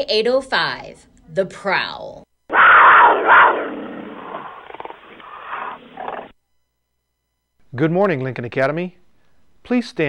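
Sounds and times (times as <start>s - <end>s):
big cat roaring and growling: 2.5s - 6.3s.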